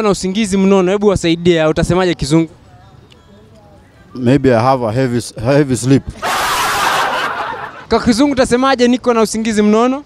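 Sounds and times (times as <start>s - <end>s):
burst of laughter: 6.2s - 7.9s.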